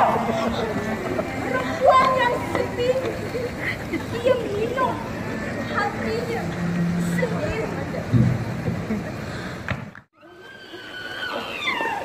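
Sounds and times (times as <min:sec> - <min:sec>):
background noise: 0:00.0 - 0:12.0.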